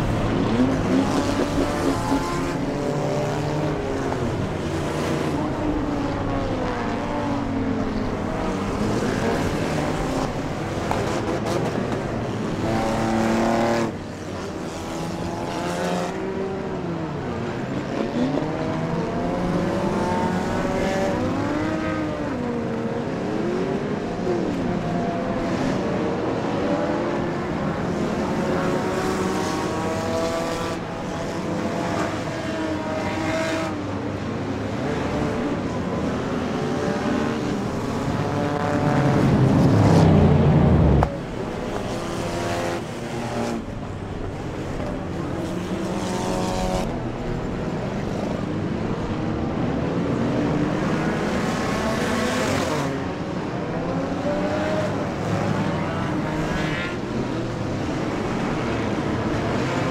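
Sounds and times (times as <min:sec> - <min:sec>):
stock car engines racing: 0:00.0 - 0:59.9.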